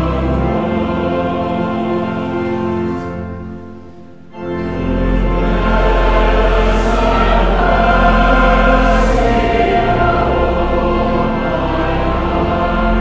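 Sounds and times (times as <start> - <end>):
choir and congregation singing hymn: 0.0 - 3.6, 4.3 - 13.0
organ: 0.0 - 13.0.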